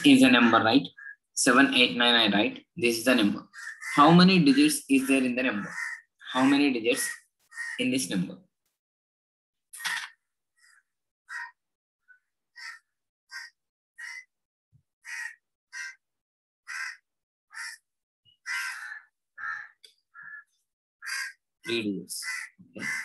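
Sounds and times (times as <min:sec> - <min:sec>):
crow cawing: 0:03.4 - 0:07.9, 0:09.8 - 0:14.3, 0:15.0 - 0:21.4, 0:22.2 - 0:23.0.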